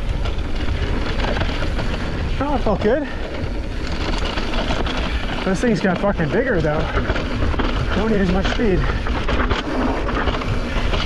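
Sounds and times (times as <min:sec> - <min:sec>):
scattered clattering: 0:00.0 - 0:11.0
steady low rumble: 0:00.0 - 0:11.0
wind buffeting microphone: 0:00.0 - 0:11.0.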